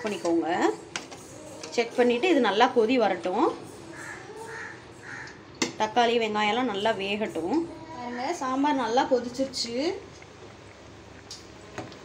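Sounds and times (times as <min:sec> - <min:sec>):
crow cawing: 0:03.9 - 0:05.4.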